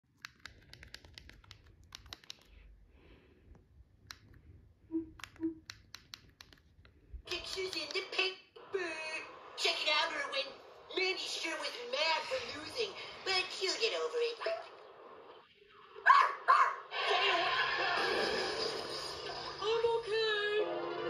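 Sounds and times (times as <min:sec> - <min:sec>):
sharp irregular clicks: 0:00.2 - 0:02.6, 0:05.2 - 0:08.0
cartoon dialogue from television: 0:07.2 - 0:15.2, 0:15.8 - 0:21.0.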